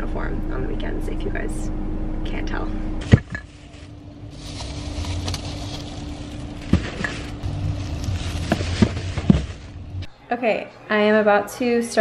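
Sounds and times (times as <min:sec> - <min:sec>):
steady low rumble: 0:00.0 - 0:10.2
plastic bags rustling: 0:03.0 - 0:10.1.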